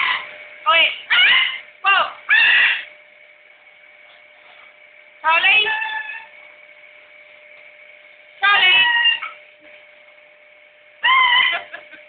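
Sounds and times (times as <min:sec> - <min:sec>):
macaw calling loudly: 0:01.1 - 0:01.6, 0:02.3 - 0:02.9, 0:11.0 - 0:11.6.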